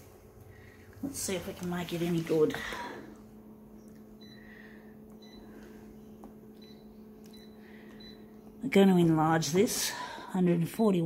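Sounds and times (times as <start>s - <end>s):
photocopier low hum: 0.0s - 11.0s.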